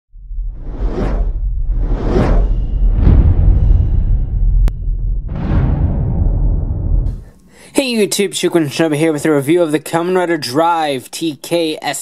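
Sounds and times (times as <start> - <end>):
deep rumble: 0.1 - 7.3
whoosh: 0.2 - 7.3.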